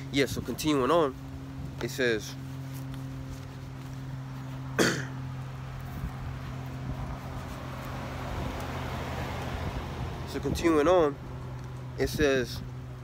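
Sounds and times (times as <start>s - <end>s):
steady low hum: 0.0s - 13.0s
man coughing: 4.8s - 5.2s
wind noise on microphone: 5.8s - 7.5s, 8.2s - 11.4s, 12.0s - 12.8s.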